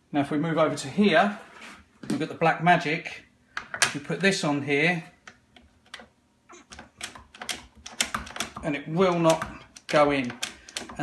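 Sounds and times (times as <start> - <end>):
faint clicks and knocks: 5.2 - 11.0.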